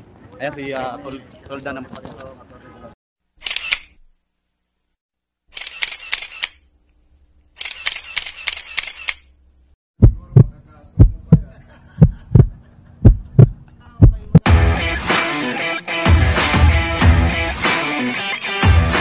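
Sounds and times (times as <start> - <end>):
camera shutter clicks: 3.4 - 4.0, 5.5 - 6.6, 7.6 - 9.3
heartbeat thumping: 10.0 - 14.6.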